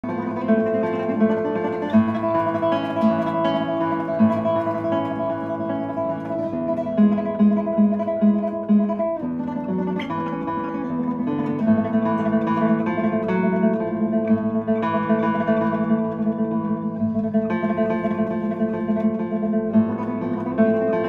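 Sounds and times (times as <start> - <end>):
classical guitar fingerstyle: 0.0 - 21.0.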